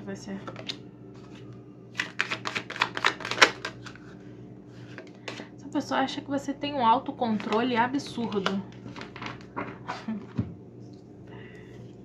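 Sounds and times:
cards being shuffled: 1.2s - 4.2s.

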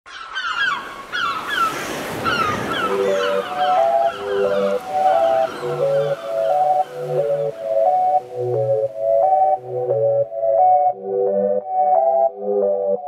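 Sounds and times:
birds giving short falling calls: 0.1s - 8.0s
soft electronic melody: 2.2s - 13.0s.

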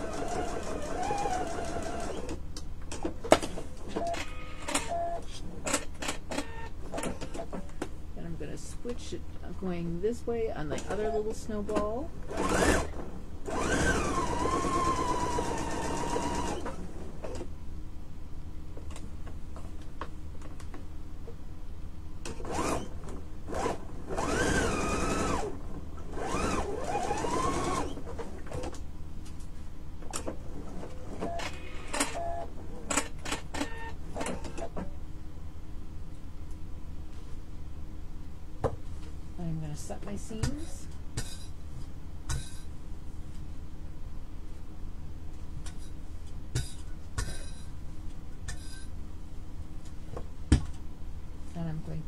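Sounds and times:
sewing machine stitching: 0.0s - 2.4s, 10.8s - 17.4s, 22.2s - 28.7s
steady low hum: 0.0s - 52.0s.

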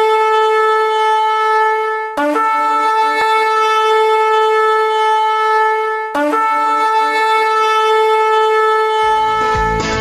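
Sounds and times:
horn blowing long note: 0.0s - 10.0s.

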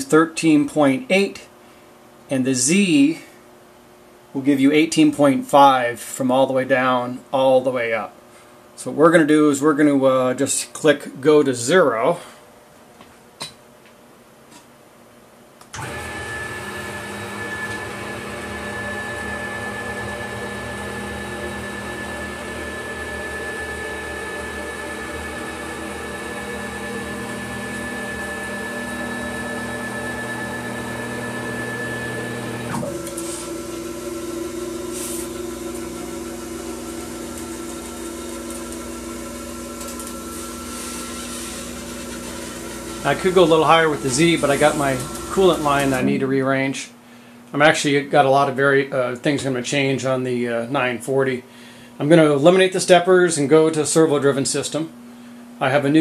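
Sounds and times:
stepper motors whining: 35.7s - 46.3s.

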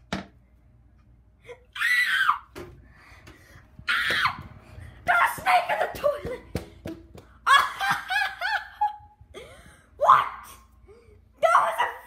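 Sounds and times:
person laughing: 7.5s - 9.8s.

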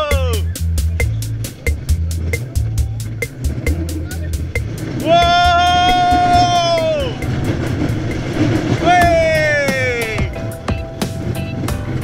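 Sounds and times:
rider crying out: 0.0s - 0.5s, 5.0s - 10.4s
roller coaster clattering on track: 0.9s - 12.0s.

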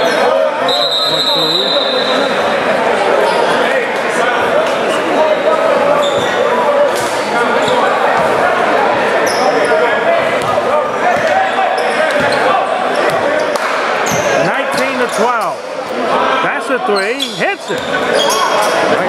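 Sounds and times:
crowd chatter: 0.0s - 19.0s
sneakers squeaking: 3.2s - 3.7s, 4.6s - 16.0s, 16.8s - 19.0s.

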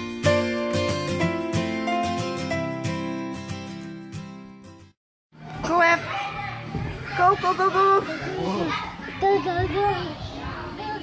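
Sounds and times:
children playing: 5.4s - 11.0s.

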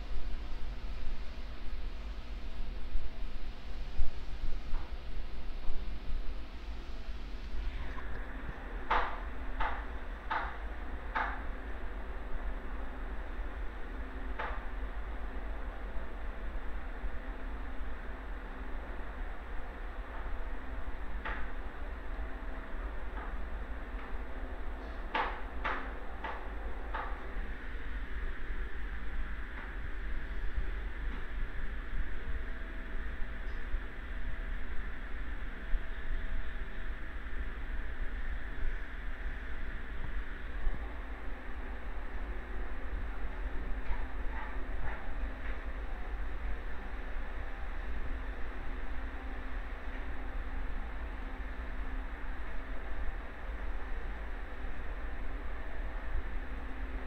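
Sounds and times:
constant low rumble: 0.0s - 57.0s.

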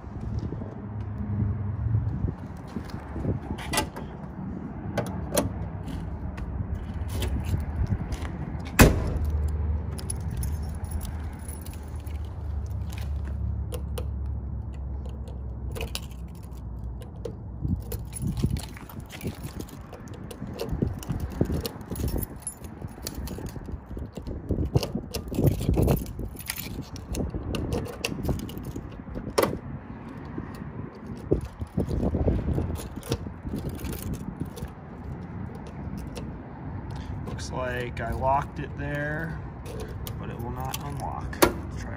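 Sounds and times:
car keys jangling: 6.8s - 37.4s, 39.2s - 41.8s.

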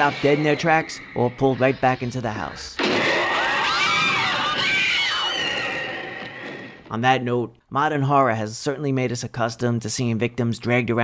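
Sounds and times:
women screaming: 3.1s - 6.2s.

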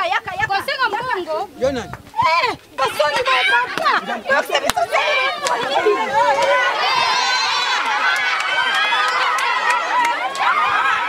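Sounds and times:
crowd shouting and calling out: 0.6s - 11.0s.

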